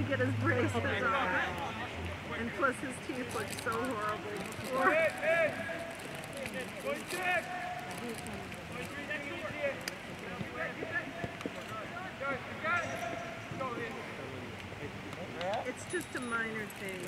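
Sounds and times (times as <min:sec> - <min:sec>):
outdoor background noise: 0:00.0 - 0:17.0
distant shouts and calls: 0:04.4 - 0:08.2, 0:08.9 - 0:14.4.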